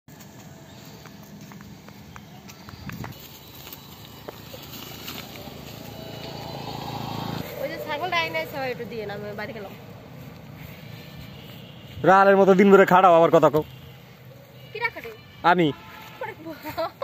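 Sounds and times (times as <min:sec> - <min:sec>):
woman speaking loudly: 0:07.6 - 0:09.8.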